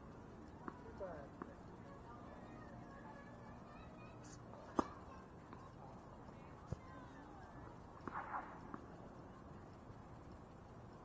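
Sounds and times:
tennis ball bouncing on court: 0:00.5 - 0:01.6, 0:04.6 - 0:05.7, 0:07.6 - 0:09.0.

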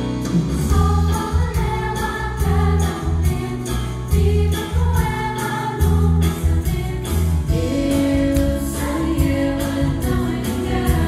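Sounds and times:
musical accompaniment with bass: 0:00.0 - 0:11.0
ensemble singing in chorus: 0:00.7 - 0:11.0.

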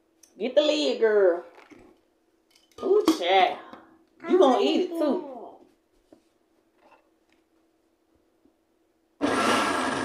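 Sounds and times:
blender motor running: 0:09.2 - 0:10.0.

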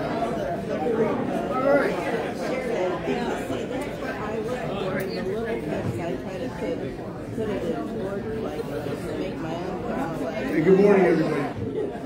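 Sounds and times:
indistinct chatter of people: 0:00.0 - 0:12.0.

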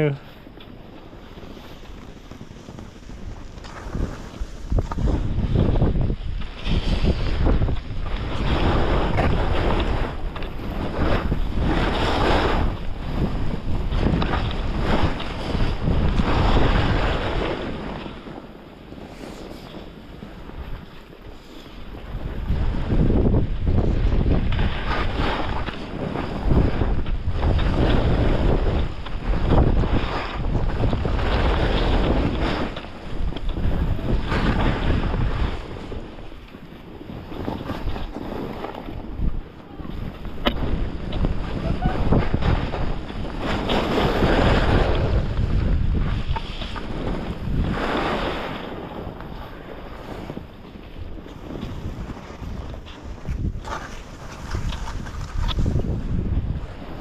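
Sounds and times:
wind buffeting microphone: 0:00.0 - 0:57.0
skis hissing through snow: 0:01.0 - 0:05.7, 0:06.4 - 0:10.1, 0:19.0 - 0:20.0, 0:21.2 - 0:22.8.

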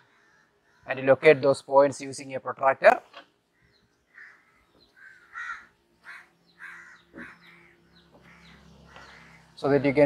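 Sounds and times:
crows cawing: 0:00.0 - 0:01.0, 0:03.5 - 0:09.8.

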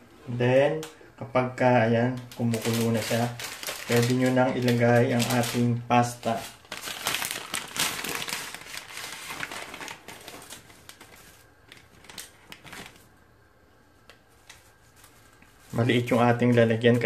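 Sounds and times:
package crinkling: 0:02.1 - 0:13.2.

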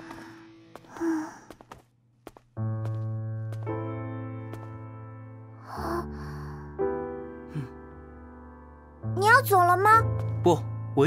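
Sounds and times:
background music: 0:02.4 - 0:11.0
soft sigh: 0:07.5 - 0:07.8.

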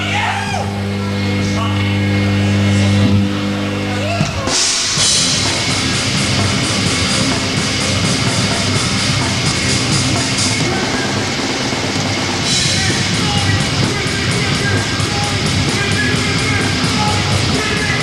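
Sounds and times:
heavy metal band playing: 0:00.0 - 0:18.0
low distorted guitar note: 0:00.0 - 0:18.0
drums and cymbals: 0:03.7 - 0:18.0.

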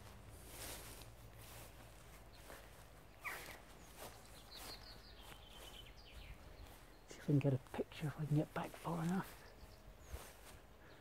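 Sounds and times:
footsteps through long grass: 0:00.0 - 0:11.0
quiet outdoor background noise: 0:00.0 - 0:11.0
soft bird calls: 0:00.0 - 0:11.0.

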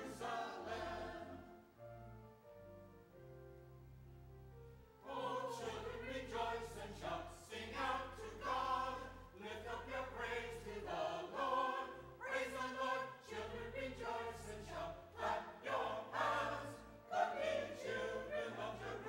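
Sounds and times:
church choir singing: 0:00.0 - 0:01.6, 0:05.0 - 0:19.0.

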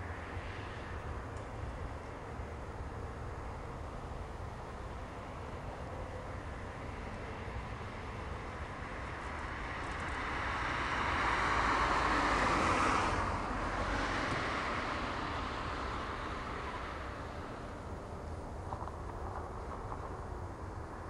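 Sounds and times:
vehicle passing by: 0:06.8 - 0:17.8.

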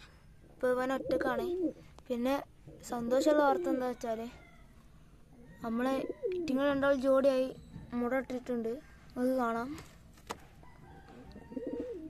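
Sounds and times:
pigeon cooing: 0:00.8 - 0:01.8, 0:05.4 - 0:06.7, 0:11.0 - 0:12.0.

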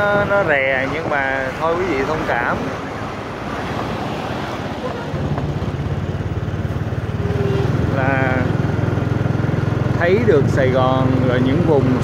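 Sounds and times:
wind and road noise: 0:00.0 - 0:12.0
motorbike engine running: 0:04.9 - 0:12.0.

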